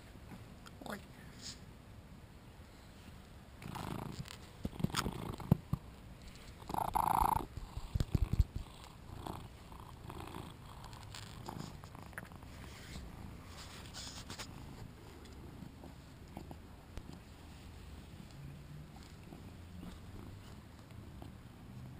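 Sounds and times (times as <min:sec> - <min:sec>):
cat purring: 0:03.6 - 0:21.9.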